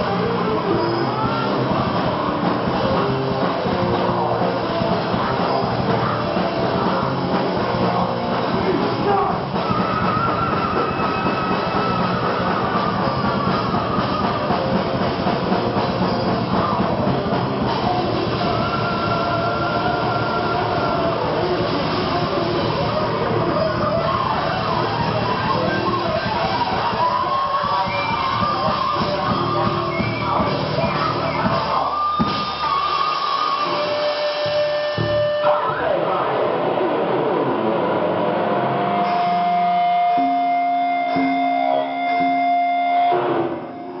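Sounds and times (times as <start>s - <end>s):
distorted electric guitars ringing: 0.0s - 44.0s
thrash metal band playing live: 0.0s - 44.0s.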